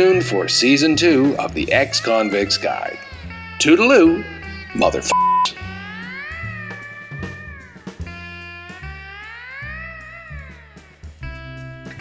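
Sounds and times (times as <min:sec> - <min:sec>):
sliding guitar music: 0:00.0 - 0:12.0
censor bleep: 0:05.0 - 0:05.7.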